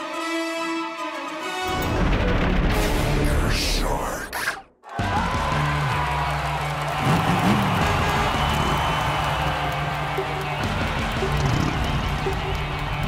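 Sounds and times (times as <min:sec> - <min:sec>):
background music with low notes: 0:00.0 - 0:13.0.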